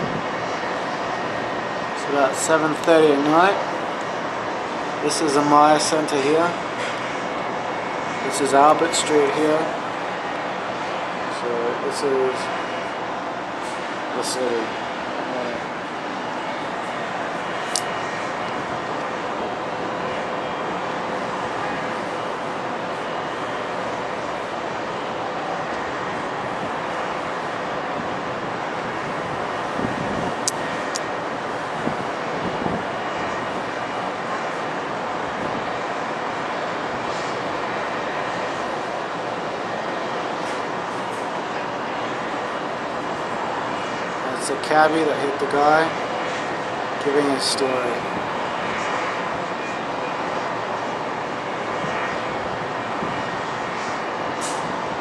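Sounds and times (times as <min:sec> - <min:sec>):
distant city traffic: 0:00.0 - 0:55.0.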